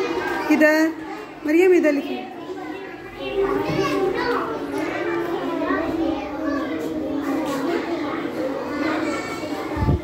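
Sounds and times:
young children talking and calling out: 0.0s - 10.0s.

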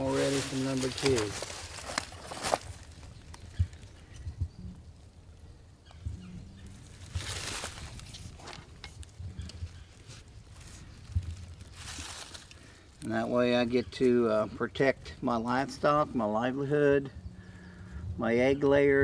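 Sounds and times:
rustling in dry leaves: 0.0s - 4.0s, 6.6s - 13.8s.

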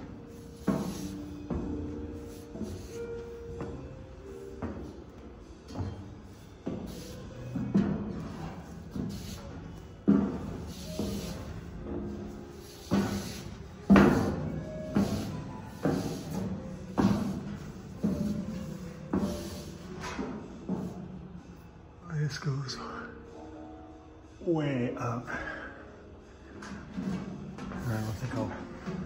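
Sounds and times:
footsteps in echoing stairwell: 0.0s - 21.6s, 26.4s - 29.0s.

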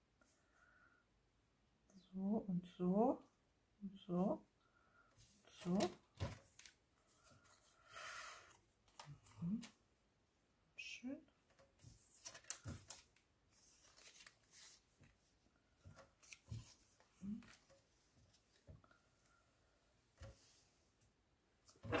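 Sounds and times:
paper strips rustling and tapping: 5.5s - 7.6s, 11.5s - 19.0s.

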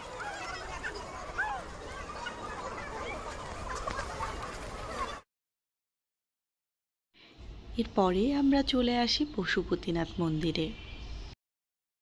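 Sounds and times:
background hubbub: 0.0s - 5.2s.

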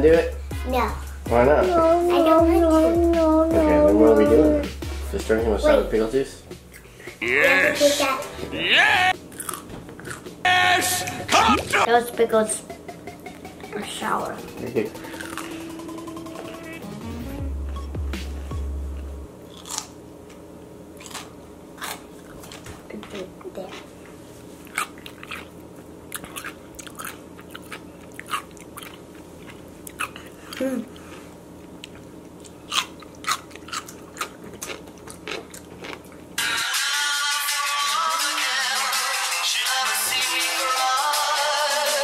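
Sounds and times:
background music with deep bass: 0.0s - 9.1s, 12.6s - 19.3s
person chewing crunchy pickle: 9.3s - 10.3s, 15.0s - 15.6s, 19.5s - 22.8s, 23.6s - 36.4s
crunching bites into pickle: 19.5s - 20.0s.

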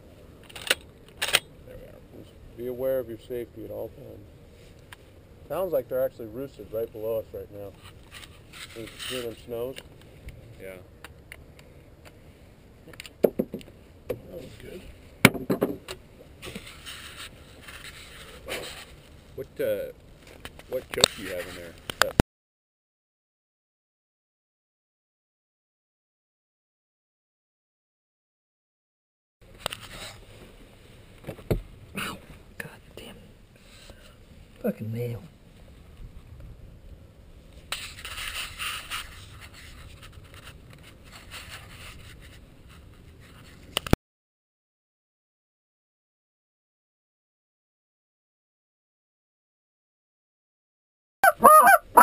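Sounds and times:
scraping on camera housing: 7.7s - 10.3s, 16.4s - 19.1s, 29.5s - 30.4s, 37.6s - 44.0s.

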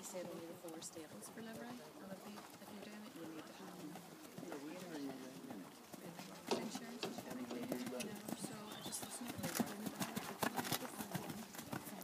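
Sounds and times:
horse hooves trotting on sand: 0.0s - 12.0s.

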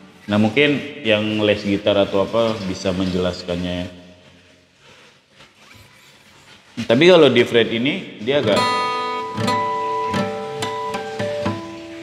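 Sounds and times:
man speaking: 0.2s - 4.2s, 6.8s - 8.8s.

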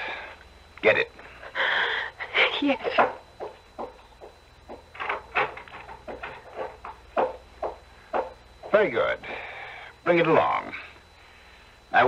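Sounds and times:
footsteps: 2.7s - 9.0s.

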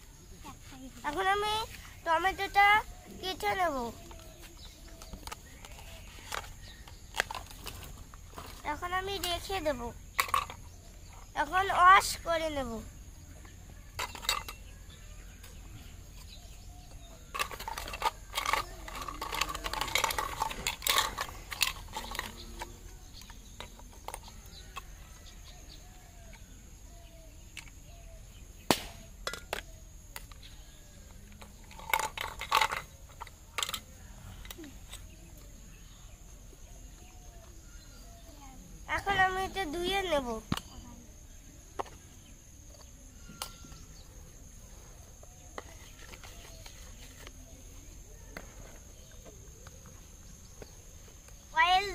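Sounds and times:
toy pots and utensils clattering: 4.9s - 12.5s, 13.9s - 14.8s, 17.2s - 25.2s, 29.2s - 30.4s, 31.3s - 35.1s, 45.5s - 47.4s.

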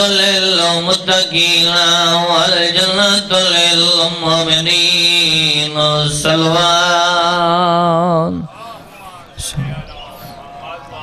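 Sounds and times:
low background noise: 0.0s - 11.0s
faint voices over public address: 8.3s - 11.0s.

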